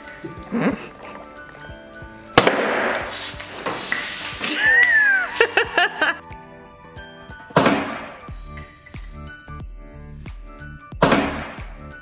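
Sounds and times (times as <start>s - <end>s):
background music: 0.0s - 12.0s
champagne cork popping: 2.4s - 5.0s.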